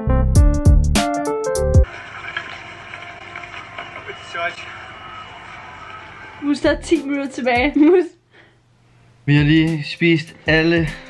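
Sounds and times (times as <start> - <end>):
room noise: 1.8 - 7.2.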